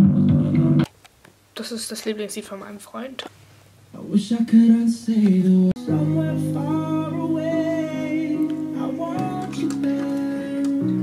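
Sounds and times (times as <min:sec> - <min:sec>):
person singing: 0:04.0 - 0:11.0
acoustic guitar: 0:05.1 - 0:11.0.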